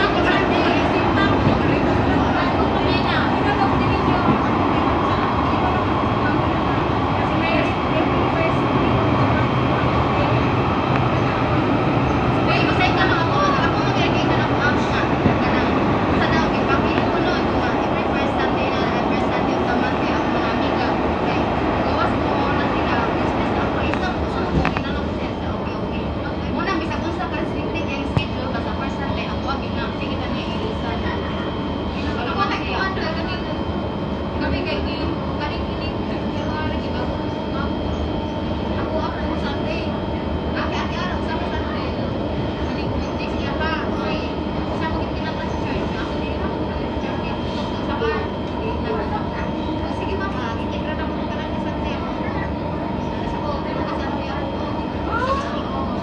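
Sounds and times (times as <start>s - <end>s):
train rolling along track: 0.0s - 56.0s.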